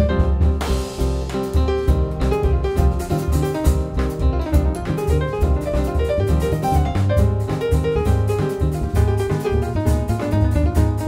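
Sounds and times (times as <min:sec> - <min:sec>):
plucked double bass: 0:00.0 - 0:11.0
upright piano: 0:00.0 - 0:11.0.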